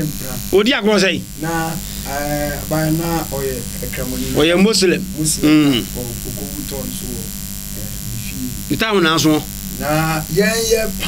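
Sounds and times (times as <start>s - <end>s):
mains hum: 0.0s - 11.0s
man speaking loudly: 0.0s - 11.0s.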